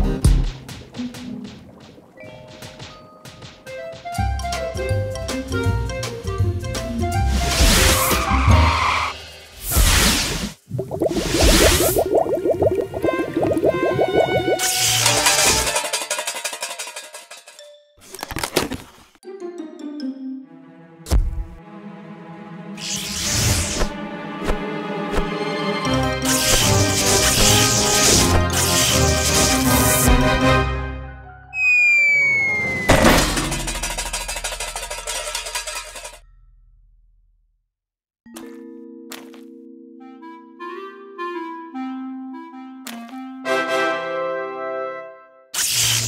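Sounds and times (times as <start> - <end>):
background music: 0.0 - 9.1, 19.2 - 22.8, 23.7 - 31.5, 38.4 - 45.4
cartoon bubbling blips: 10.7 - 15.0.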